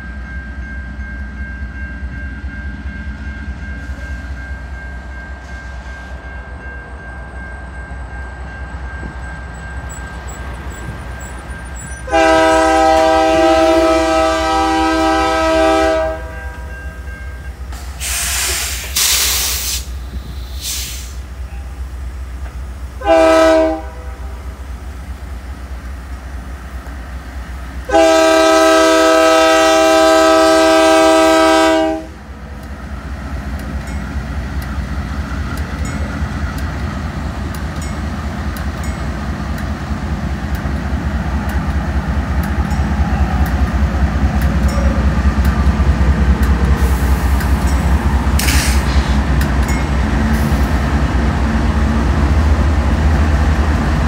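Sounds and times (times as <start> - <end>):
locomotive engine rumble: 0.0 - 54.0
train wheel noise: 0.0 - 54.0
locomotive air horn blasts: 12.0 - 16.7, 23.0 - 24.4, 27.9 - 32.2
air hiss: 17.8 - 21.4, 46.8 - 47.6.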